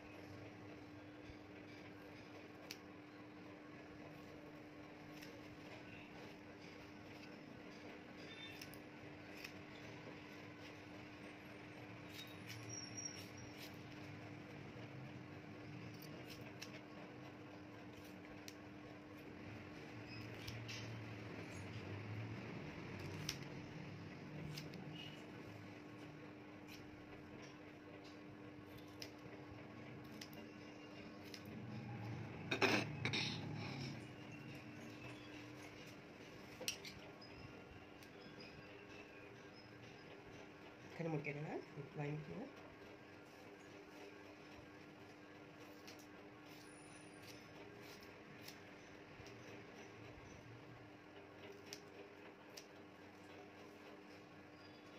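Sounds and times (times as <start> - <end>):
scissors snipping hair: 2.6 - 2.8, 8.3 - 9.8, 15.9 - 16.8, 23.0 - 23.5, 24.4 - 25.2.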